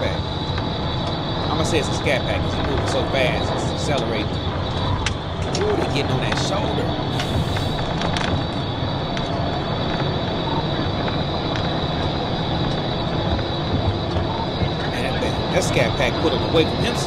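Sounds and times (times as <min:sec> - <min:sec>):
car engine: 0:00.0 - 0:17.0
road tyre and wind roar: 0:00.0 - 0:17.0
steady high-pitched tone: 0:00.0 - 0:17.0.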